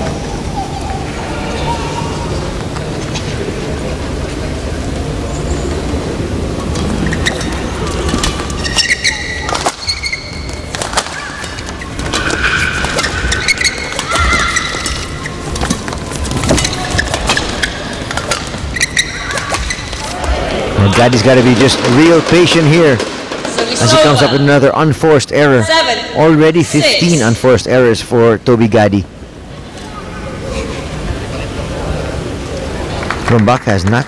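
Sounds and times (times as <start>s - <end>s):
crowd murmur: 0.0s - 9.7s, 11.2s - 22.3s, 29.3s - 33.3s
shoes squeaking on court: 6.6s - 22.6s
rackets hitting shuttlecock: 7.2s - 20.5s.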